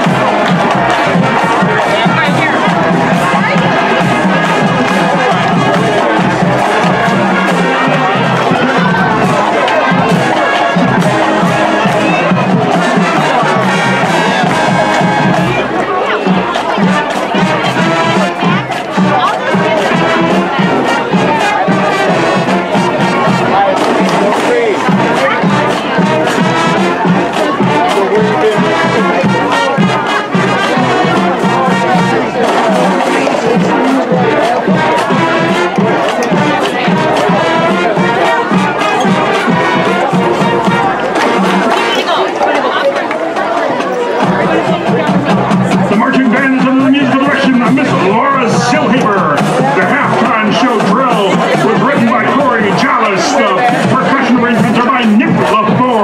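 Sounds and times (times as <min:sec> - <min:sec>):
crowd chatter: 0:00.0 - 0:56.0
drum line beat: 0:00.0 - 0:56.0
marching band playing: 0:00.0 - 0:56.0.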